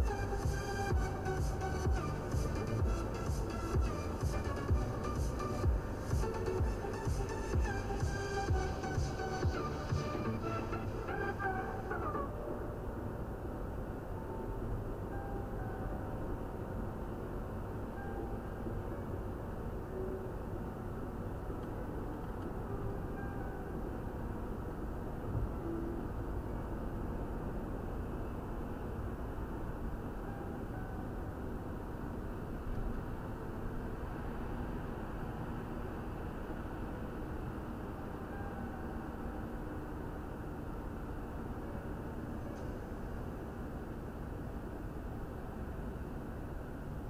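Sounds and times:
car road and engine noise: 0.0s - 47.0s.

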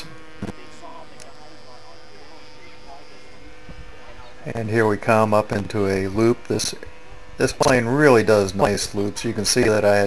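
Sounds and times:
faint indistinct murmuring: 0.0s - 4.5s
electrical hum and buzz: 0.0s - 10.0s.

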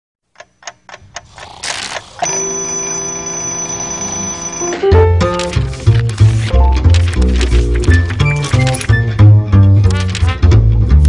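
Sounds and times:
clock ticking: 0.3s - 2.6s
mechanical alarm clock ringing: 2.2s - 4.8s.

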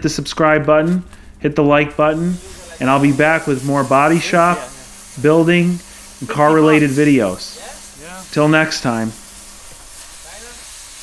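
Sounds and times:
cutting torch hissing: 0.8s - 11.0s.

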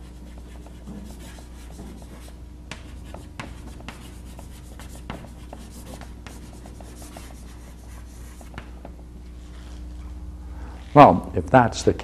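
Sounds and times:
chalk scratching on blackboard: 0.0s - 8.8s
chalk tapping on board: 0.0s - 9.0s
steady low hum: 0.0s - 12.0s.

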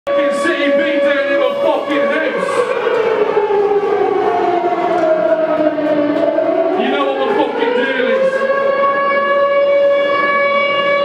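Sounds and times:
multi-tone siren wail: 0.1s - 11.0s.

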